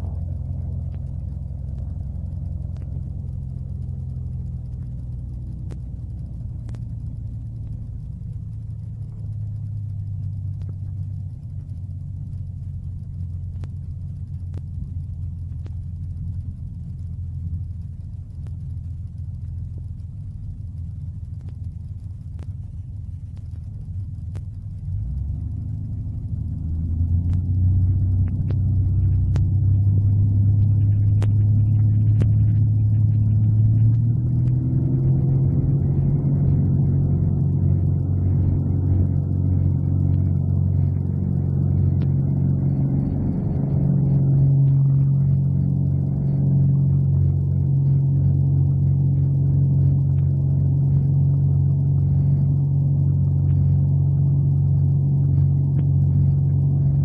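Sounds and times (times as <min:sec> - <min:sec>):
aircraft engine and propeller: 0:00.0 - 0:57.0.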